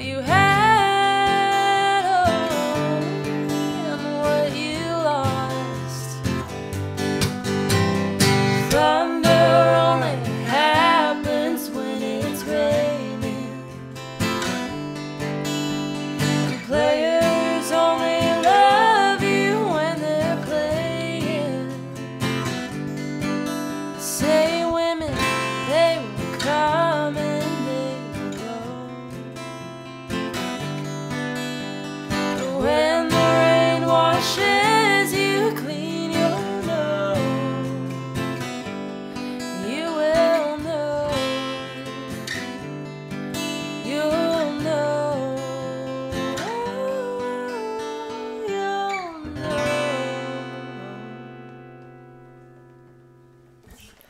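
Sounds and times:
woman singing: 0.0 - 6.6, 8.5 - 14.0, 15.6 - 22.7, 23.9 - 29.3, 32.1 - 38.5, 39.2 - 42.7, 43.4 - 51.6
acoustic guitar strumming: 0.0 - 54.0.

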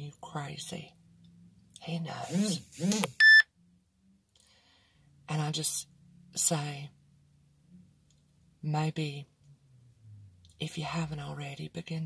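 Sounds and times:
short electronic beep: 2.9 - 3.4.

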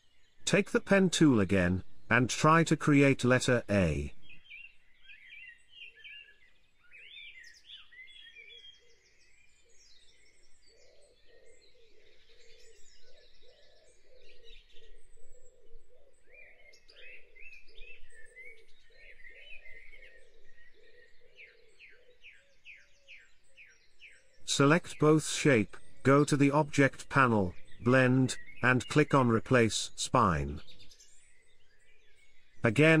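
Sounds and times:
birds chirping and singing: 0.0 - 33.0
low repeated bird call: 0.0 - 33.0.

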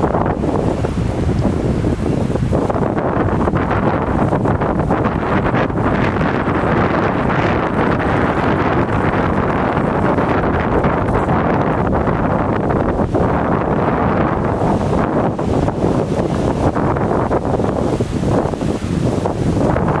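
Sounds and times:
wind blowing across microphone: 0.0 - 20.0.

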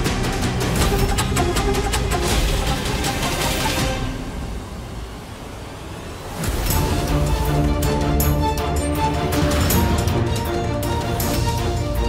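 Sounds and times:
dramatic music: 0.0 - 12.0.

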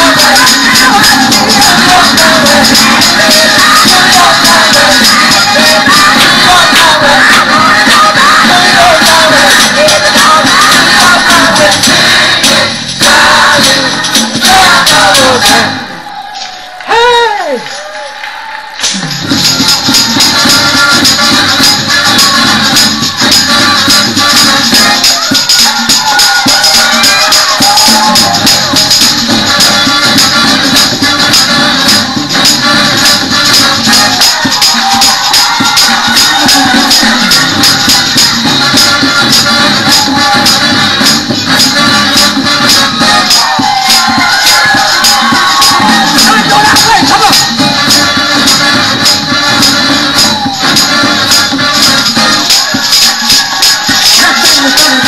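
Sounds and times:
tambourine jingling: 0.0 - 15.8, 18.8 - 55.0
up-tempo gospel music: 0.0 - 55.0.

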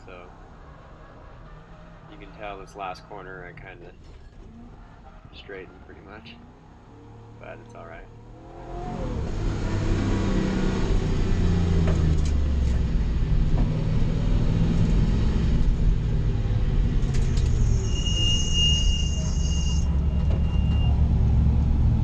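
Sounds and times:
car engine at low revs: 0.0 - 17.9, 19.9 - 22.0
high steady squeal: 17.1 - 21.0.

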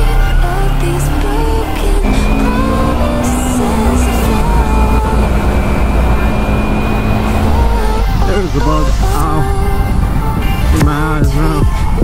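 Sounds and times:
motorcycle engine cruising: 0.0 - 11.8
background music: 0.0 - 12.0
wind and road rumble: 0.0 - 12.0.

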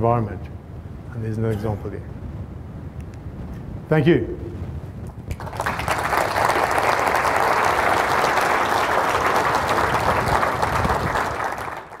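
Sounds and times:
audience applauding: 5.3 - 12.0.

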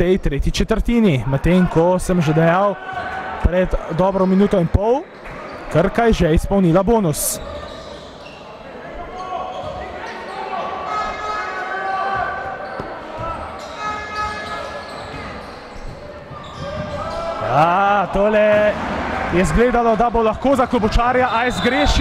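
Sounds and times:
crowd calling and chanting: 0.9 - 22.0
basketball bouncing on court: 12.1 - 17.2.

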